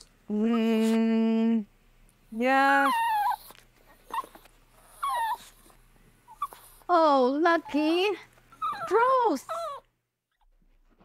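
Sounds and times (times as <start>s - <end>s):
dog whimpering: 2.6s - 6.9s, 8.5s - 9.9s.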